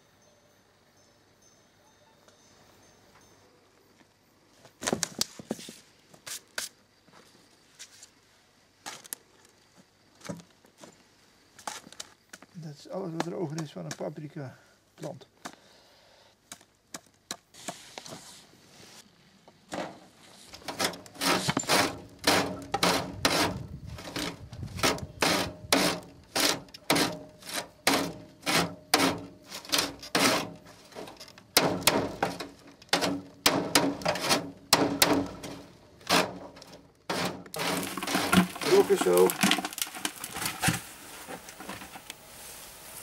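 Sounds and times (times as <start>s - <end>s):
compost scraping across wire sieve: 20.0s - 43.0s.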